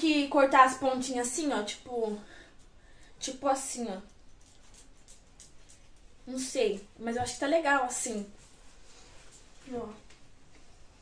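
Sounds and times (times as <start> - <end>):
faint scissors snipping hair: 3.8 - 6.5.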